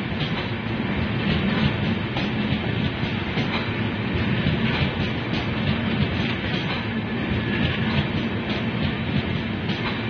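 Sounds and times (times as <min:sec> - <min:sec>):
train wheels rumbling on rails: 0:00.0 - 0:10.0
wheels clicking over rail joints: 0:01.3 - 0:10.0.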